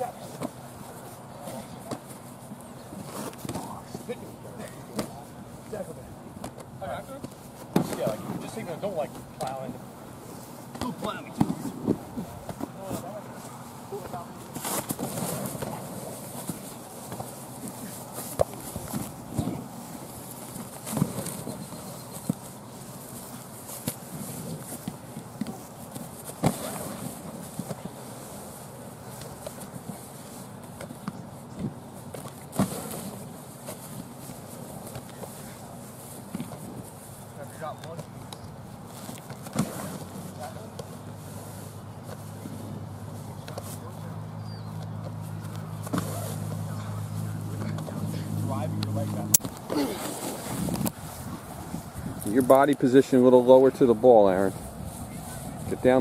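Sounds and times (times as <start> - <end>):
distant indistinct voices: 39.8 - 50.3.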